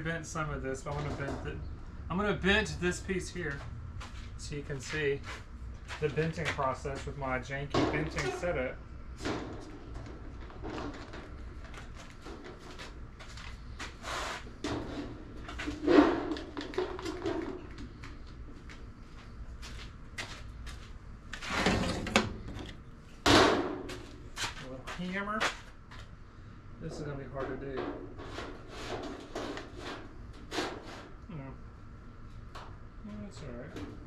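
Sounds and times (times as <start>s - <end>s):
metal bangs: 23.2s - 24.0s
sheet metal knocks and clanks: 23.3s - 24.0s.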